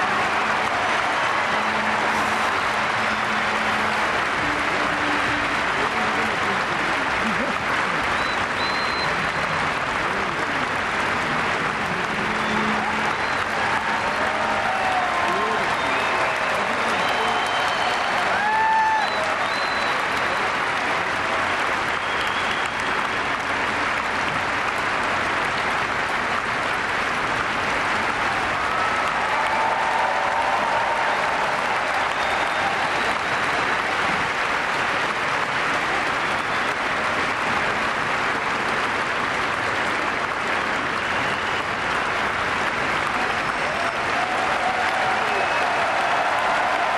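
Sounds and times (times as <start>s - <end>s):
large audience applauding: 0.0s - 46.9s.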